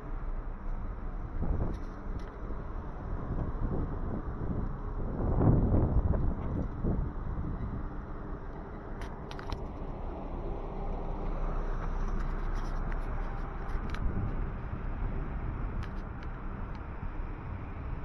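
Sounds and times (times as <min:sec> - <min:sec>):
low rumble of vehicles: 0:00.0 - 0:18.0.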